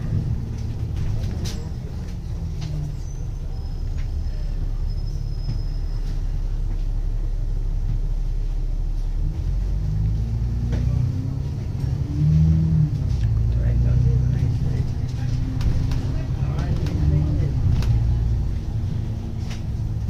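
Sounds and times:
bus engine drone: 0:00.0 - 0:20.0.

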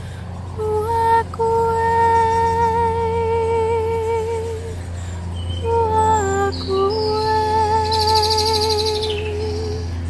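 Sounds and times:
low musical drone: 0:00.0 - 0:10.0
woman singing a long note: 0:00.6 - 0:04.8, 0:05.4 - 0:10.0
bird trilling: 0:01.9 - 0:10.0.

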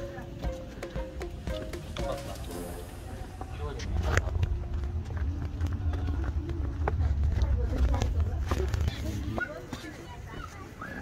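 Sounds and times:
footsteps on stone steps: 0:00.0 - 0:02.6, 0:03.3 - 0:11.0.

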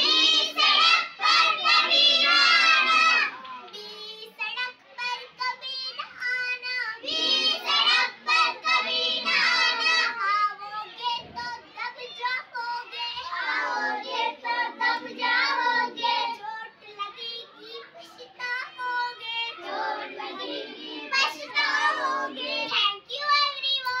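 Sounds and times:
children singing together: 0:00.0 - 0:23.0.

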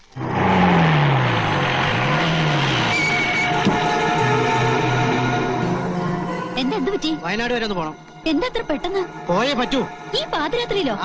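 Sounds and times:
jeep engine revving: 0:00.0 - 0:07.6.

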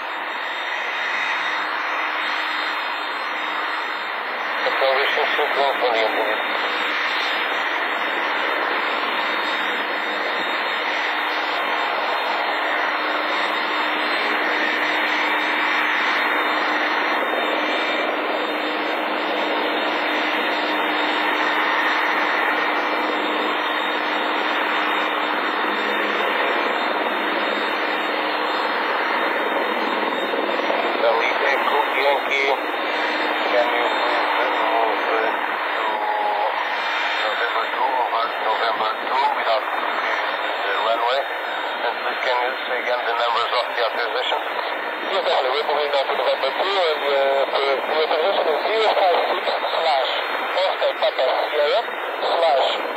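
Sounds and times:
aircraft engine noise over radio: 0:00.0 - 0:52.9
speech-like sounds: 0:04.6 - 0:06.4, 0:31.0 - 0:32.6, 0:33.5 - 0:36.6, 0:45.1 - 0:52.8.

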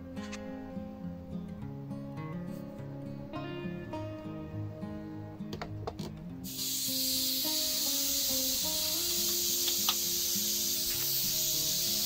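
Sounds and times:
high hiss of corona discharge: 0:06.4 - 0:12.0.

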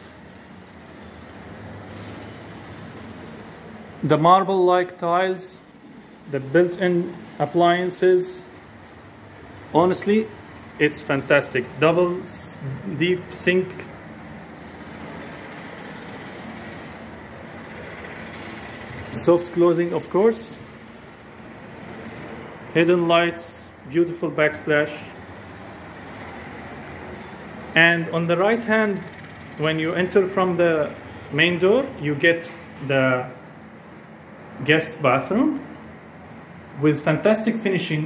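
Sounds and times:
low rumble and hiss: 0:00.0 - 0:38.0.

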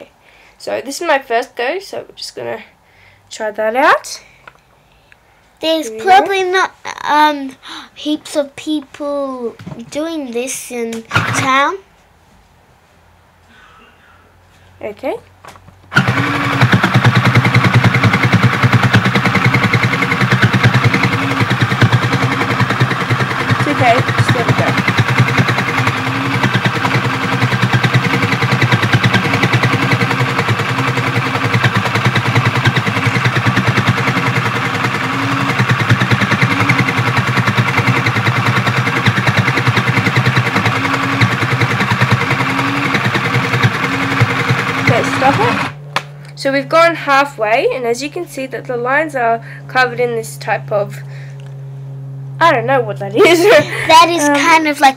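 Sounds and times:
toy sewing machine stitching: 0:11.1 - 0:11.6, 0:15.9 - 0:45.8.

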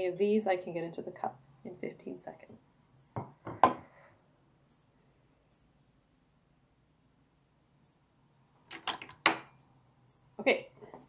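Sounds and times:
plate knocking on wooden table: 0:03.2 - 0:03.8.

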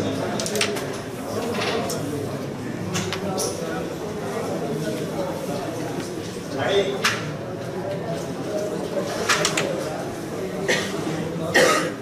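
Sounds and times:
low murmur of voices: 0:00.0 - 0:12.0
person coughing: 0:10.6 - 0:12.0.

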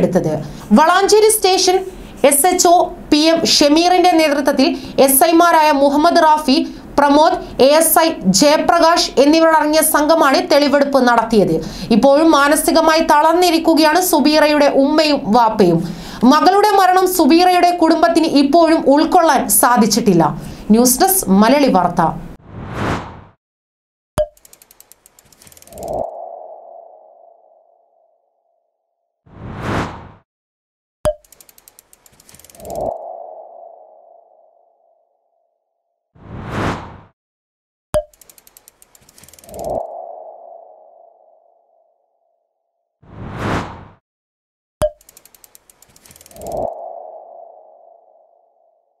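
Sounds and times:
whoosh: 0:22.4 - 0:23.4, 0:29.3 - 0:30.2, 0:36.2 - 0:37.2, 0:43.0 - 0:44.0
rapid ticking: 0:24.3 - 0:25.8, 0:31.2 - 0:32.6, 0:38.1 - 0:39.7, 0:45.0 - 0:46.5
sharp click: 0:31.1 - 0:32.9, 0:38.0 - 0:39.8, 0:44.8 - 0:46.7.

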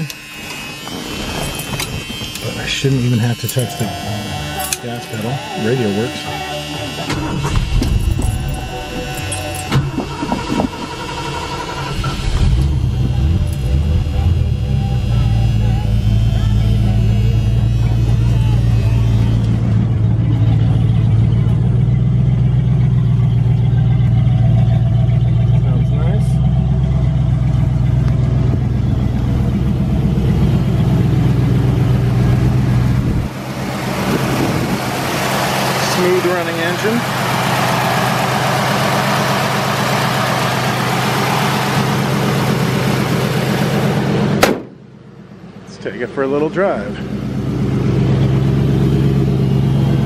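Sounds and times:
car engine starting and idling: 0:00.0 - 0:50.0
car radio talk: 0:02.3 - 0:10.8, 0:25.4 - 0:26.5, 0:35.6 - 0:37.2, 0:45.6 - 0:47.2.

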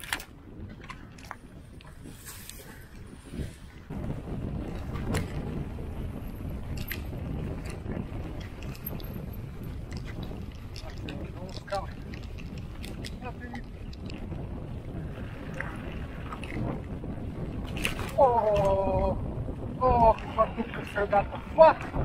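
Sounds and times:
bike knocking and rattling: 0:00.0 - 0:03.1, 0:03.9 - 0:18.2
bike tyres rolling over dirt: 0:00.0 - 0:22.0
wind buffeting microphone: 0:00.0 - 0:22.0.

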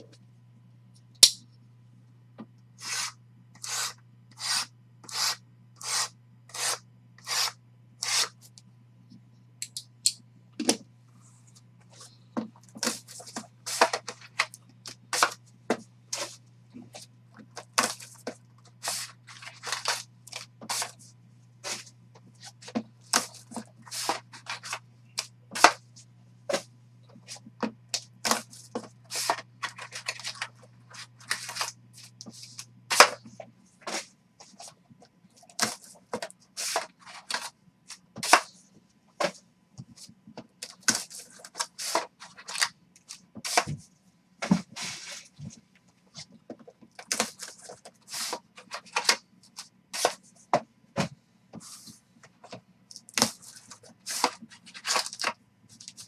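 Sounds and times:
low steady hum: 0:00.0 - 0:56.0
card packs clicking and crinkling: 0:40.6 - 0:43.7, 0:46.9 - 0:50.2, 0:53.0 - 0:56.0.

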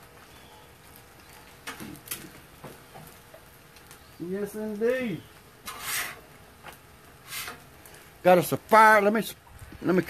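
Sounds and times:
eggs sizzling on a griddle: 0:00.0 - 0:10.0.

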